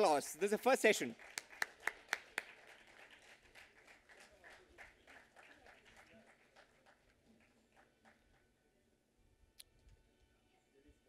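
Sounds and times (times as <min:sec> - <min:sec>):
audience applause: 0:00.9 - 0:08.5
sharp hand claps: 0:01.1 - 0:08.4.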